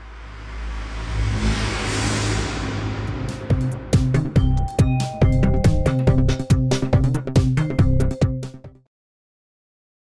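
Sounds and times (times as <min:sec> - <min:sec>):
rush of noise: 0:00.0 - 0:04.4
deep bass drone: 0:00.0 - 0:08.2.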